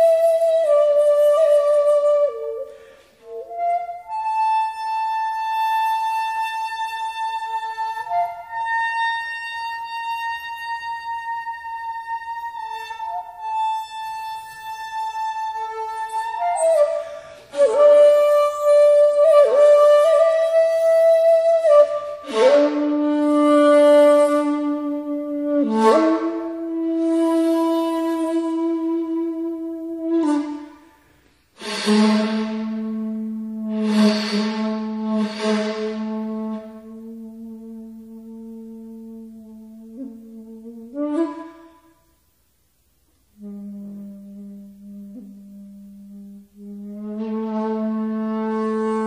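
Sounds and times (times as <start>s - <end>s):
bamboo flute long notes: 0.0s - 42.4s, 43.3s - 49.0s
breath noise: 2.7s - 3.3s, 17.0s - 17.6s, 30.9s - 32.8s, 33.7s - 36.7s.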